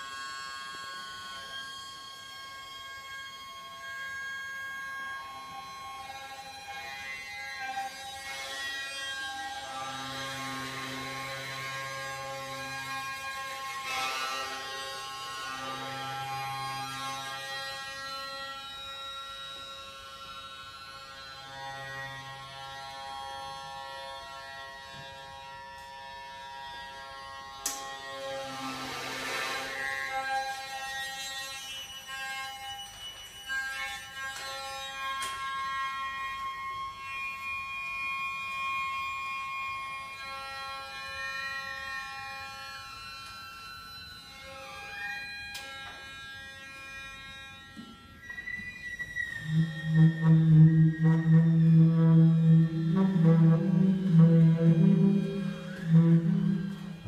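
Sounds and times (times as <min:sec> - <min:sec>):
hurdy-gurdy droning: 0:00.0 - 0:57.0.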